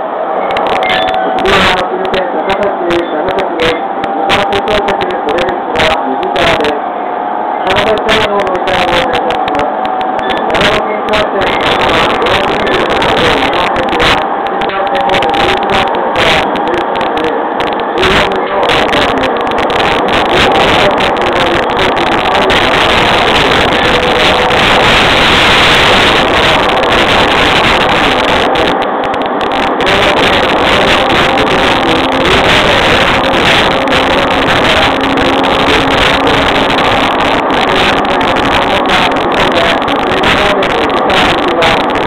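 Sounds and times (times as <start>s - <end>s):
train wheels rumbling on rail: 0.0s - 42.0s.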